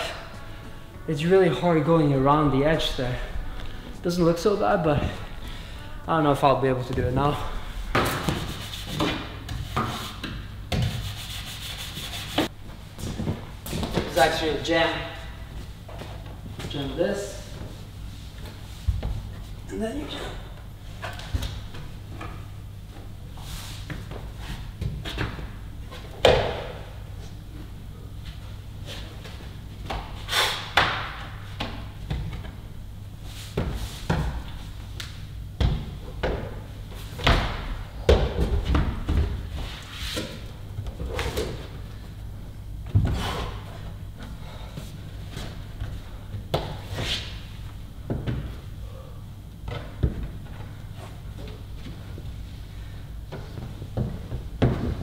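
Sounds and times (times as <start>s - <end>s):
steady low hum: 0.0s - 55.0s
hands slapping climbing holds: 23.8s - 26.9s, 28.9s - 32.6s, 33.4s - 41.8s, 44.2s - 47.4s.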